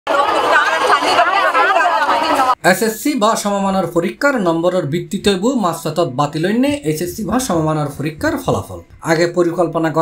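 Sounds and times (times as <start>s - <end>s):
girls chattering: 0.1s - 2.6s.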